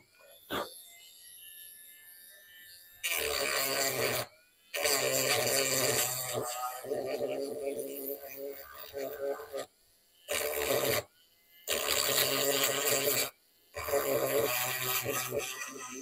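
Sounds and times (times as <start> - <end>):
rotary tool grinding metal: 0.0 - 16.0.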